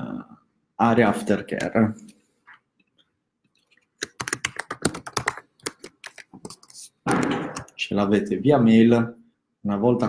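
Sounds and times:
computer keyboard typing: 3.5 - 7.8.

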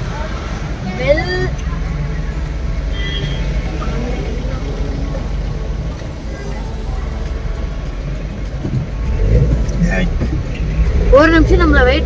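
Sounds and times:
car engine rumble from cabin: 0.0 - 12.0
faint voices: 0.0 - 12.0.

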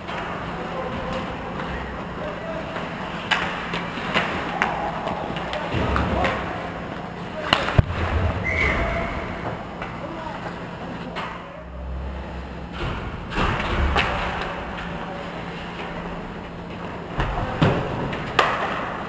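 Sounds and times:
sticks and puck clattering: 0.0 - 8.6, 13.3 - 19.0
players shouting: 0.3 - 7.8.

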